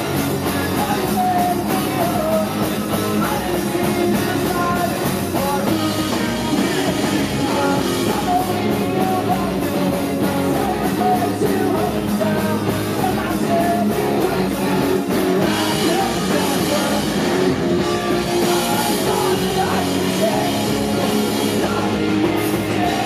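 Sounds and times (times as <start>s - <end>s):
bass guitar: 0.0s - 23.0s
drum kit beat: 0.0s - 23.0s
electric guitars: 0.0s - 23.0s
person singing lead vocal: 0.0s - 23.0s.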